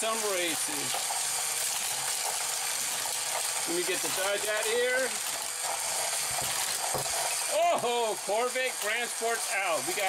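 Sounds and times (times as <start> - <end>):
motorized toy track whirring: 0.0 - 10.0.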